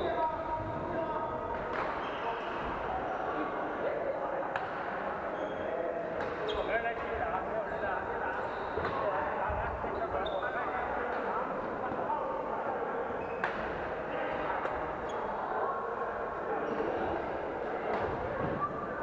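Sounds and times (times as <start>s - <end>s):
many people talking: 0.0s - 19.0s.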